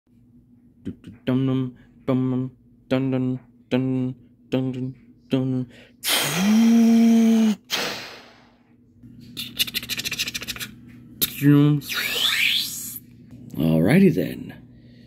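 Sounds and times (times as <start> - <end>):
loud rising tone with hiss: 11.8 - 13.0.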